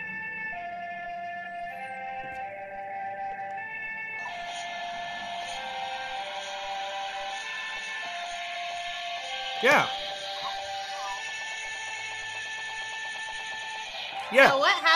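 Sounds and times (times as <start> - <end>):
electronic music melody: 0.0 - 14.9
noisy electronic beat: 4.2 - 14.9.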